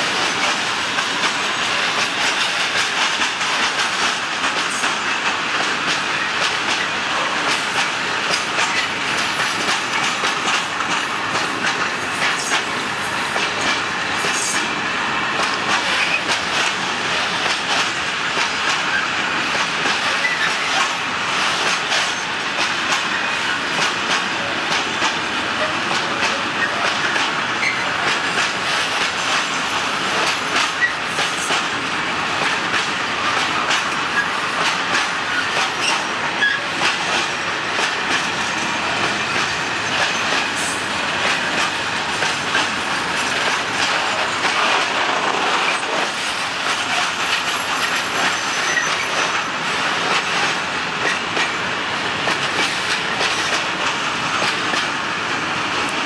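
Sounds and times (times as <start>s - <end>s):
train wheels clicking over rail joints: 0.0s - 56.0s.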